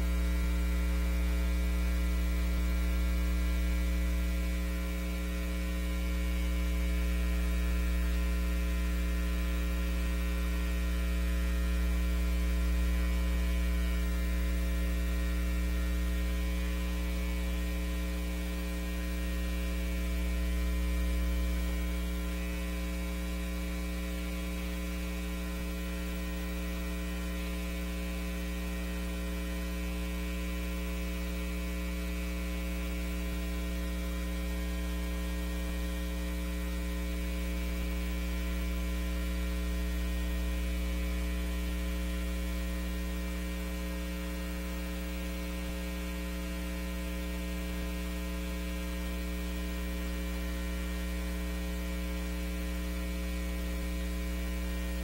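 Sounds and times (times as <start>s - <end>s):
electrical mains hum: 0.0s - 55.0s.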